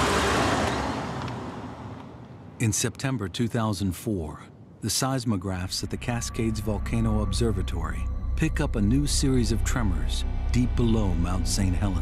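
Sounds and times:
deep rumbling rush: 0:05.6 - 0:12.0.

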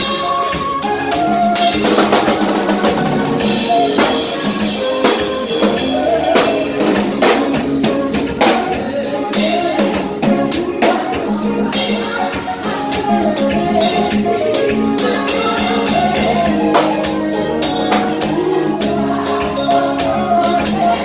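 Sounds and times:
drum kit snare and cymbals: 0:00.0 - 0:21.0
electric bass: 0:00.0 - 0:21.0
keyboard chords: 0:00.0 - 0:21.0.

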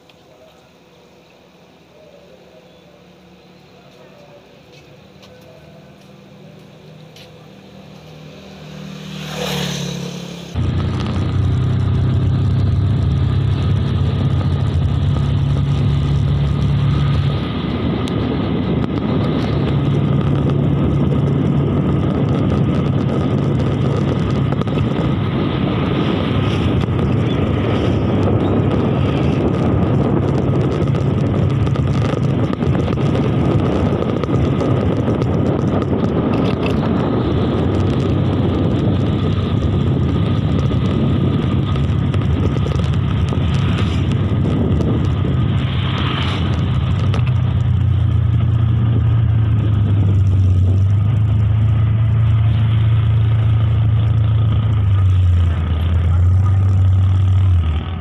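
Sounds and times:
motorcycle engine running: 0:02.0 - 0:58.0
wind noise on microphone: 0:09.1 - 0:58.0.

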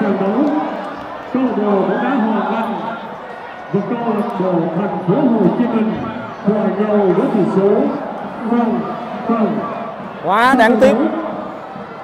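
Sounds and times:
man talking: 0:03.7 - 0:11.2.

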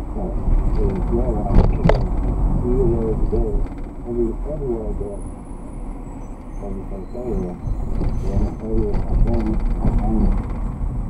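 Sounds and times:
car road rumble inside cabin: 0:00.0 - 0:11.0
man talking: 0:00.1 - 0:05.2, 0:06.6 - 0:07.6, 0:08.2 - 0:10.4.

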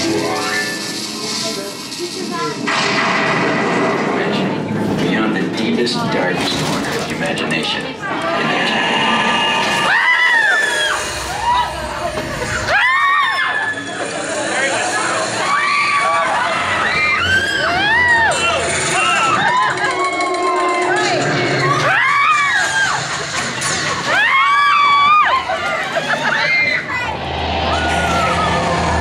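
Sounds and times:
riders screaming: 0:08.8 - 0:11.9, 0:12.6 - 0:14.0, 0:15.2 - 0:23.1, 0:24.0 - 0:27.1
long high scream: 0:09.8 - 0:11.8, 0:15.4 - 0:18.4, 0:26.4 - 0:29.0.

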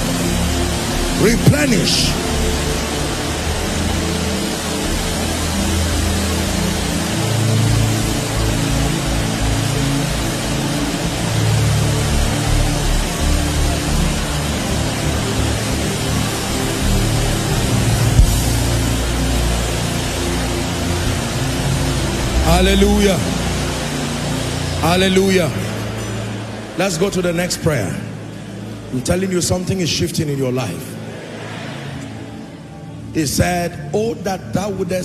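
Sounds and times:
low keyboard chords: 0:00.0 - 0:29.7
many voices praying aloud: 0:01.2 - 0:02.2.

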